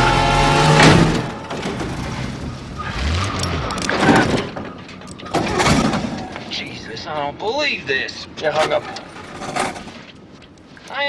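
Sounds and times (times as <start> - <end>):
pickup truck engine driving: 0.0 - 7.4.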